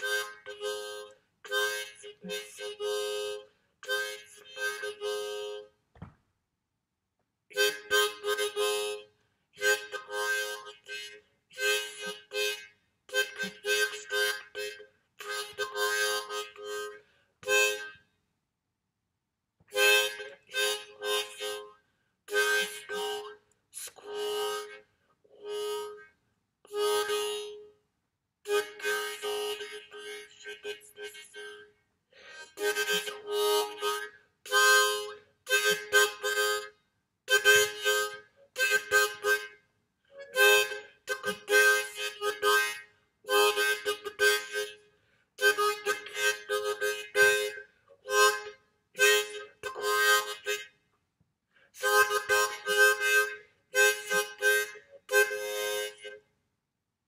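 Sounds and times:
harmonica chords in speech-like phrases: 0:00.0 - 0:05.7, 0:09.6 - 0:17.9, 0:19.8 - 0:21.7, 0:22.3 - 0:24.8, 0:28.5 - 0:31.7, 0:32.3 - 0:36.7, 0:37.3 - 0:39.5, 0:40.2 - 0:44.8, 0:45.4 - 0:50.7, 0:51.8 - 0:56.2.

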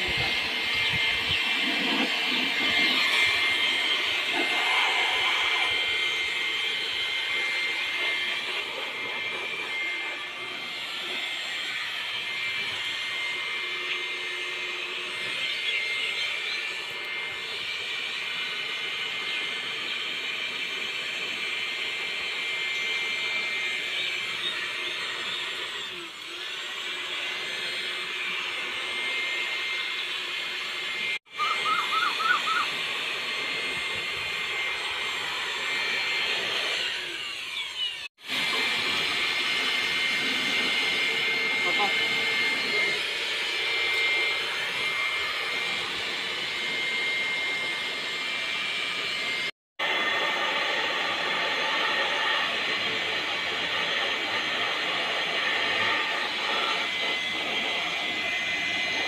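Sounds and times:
electric air blower whining: 0:00.0 - 0:59.0.

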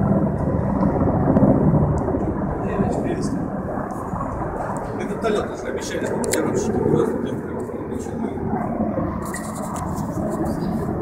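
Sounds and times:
helicopters flying past: 0:00.0 - 0:11.0.

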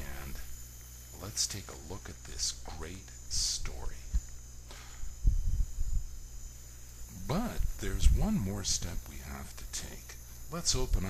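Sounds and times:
man speaking: 0:00.0 - 0:00.5, 0:01.2 - 0:04.1, 0:07.1 - 0:11.0
breath: 0:04.6 - 0:05.2.

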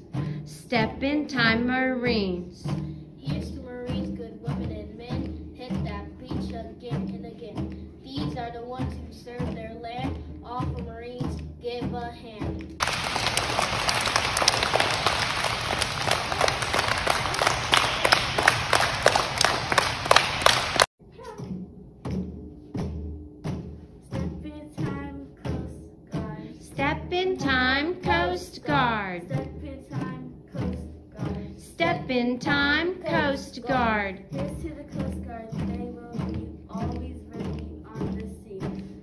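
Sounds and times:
children clapping hands: 0:12.6 - 0:20.9.

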